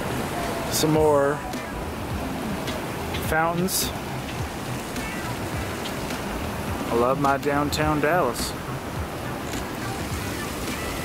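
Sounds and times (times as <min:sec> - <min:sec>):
background music: 0:00.0 - 0:11.0
outdoor street noise: 0:00.0 - 0:11.0.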